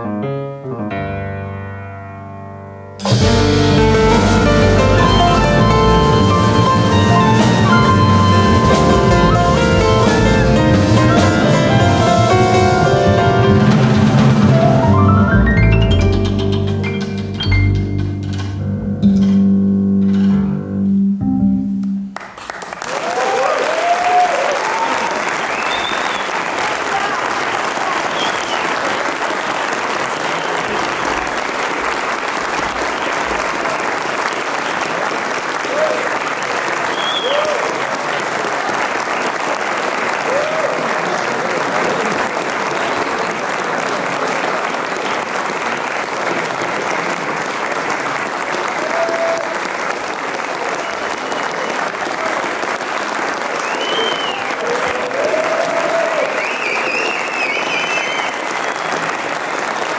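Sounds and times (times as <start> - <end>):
audience applauding: 3.0 - 17.3, 22.2 - 59.9
short cheers: 22.8 - 29.0, 35.6 - 39.3, 40.1 - 42.1, 48.6 - 49.8, 53.5 - 59.4.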